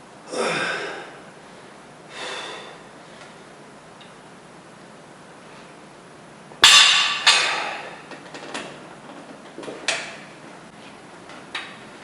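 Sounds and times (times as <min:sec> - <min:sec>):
barbell clanking on floor: 0:06.6 - 0:08.8.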